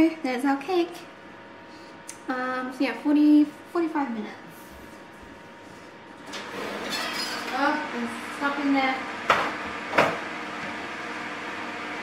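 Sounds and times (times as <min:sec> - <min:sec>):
oven door pulled open: 0:06.3 - 0:07.6.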